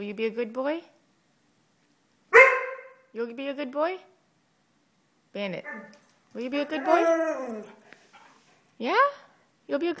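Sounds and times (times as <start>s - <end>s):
dog barking: 2.3s - 3.0s.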